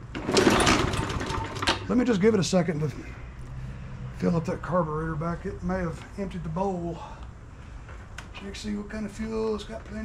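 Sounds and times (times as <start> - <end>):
mower engine turning over: 0.0 - 2.0.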